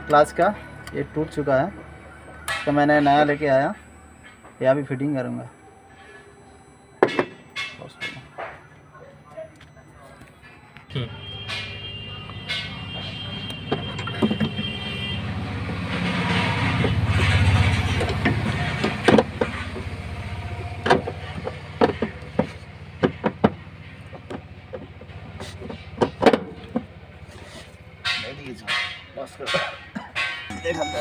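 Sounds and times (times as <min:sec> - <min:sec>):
vehicle engine low hum: 0:00.0 - 0:31.0.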